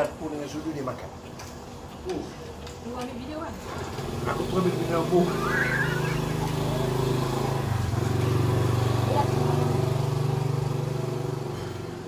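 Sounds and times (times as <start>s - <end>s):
vehicle engine running: 4.0s - 12.0s.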